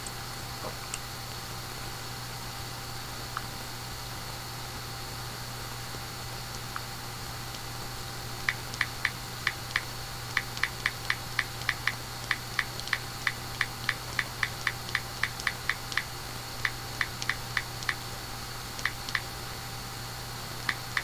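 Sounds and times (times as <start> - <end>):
keyboard typing clicks: 8.5 - 18.0, 18.8 - 19.2, 20.7 - 21.0.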